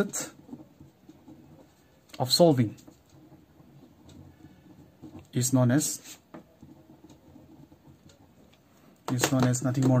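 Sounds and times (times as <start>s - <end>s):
pen scratching on paper: 0.0s - 8.5s.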